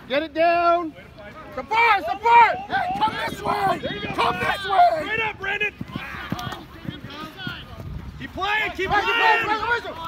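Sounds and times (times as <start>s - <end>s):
open-air background noise: 0.0s - 10.0s
distant people shouting: 1.6s - 7.6s, 8.3s - 10.0s.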